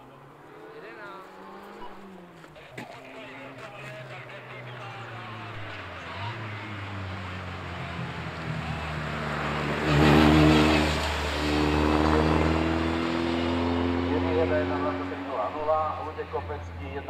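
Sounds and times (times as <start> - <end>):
racing car engine at full throttle: 0.0 - 17.0.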